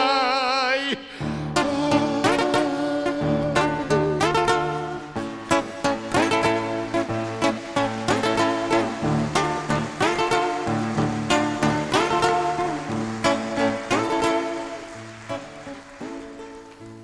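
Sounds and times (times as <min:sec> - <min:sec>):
acoustic guitars playing: 0:01.1 - 0:17.0.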